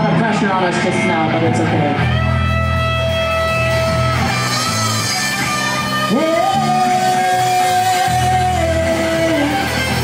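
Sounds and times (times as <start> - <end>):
bass guitar notes: 0.0 - 10.0
electric guitar chords: 0.0 - 10.0.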